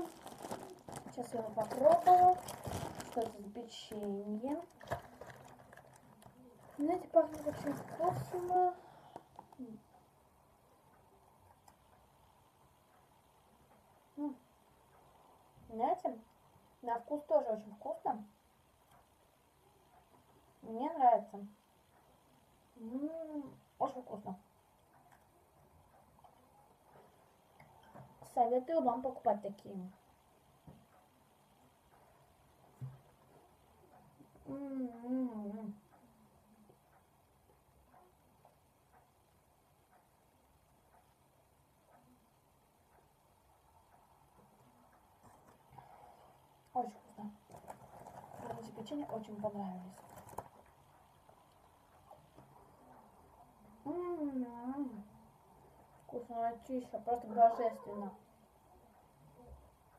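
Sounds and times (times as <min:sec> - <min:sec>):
chewing cookie: 0:00.0 - 0:09.6, 0:45.0 - 0:53.6
woman humming mmm: 0:22.8 - 0:23.6, 0:34.4 - 0:35.8.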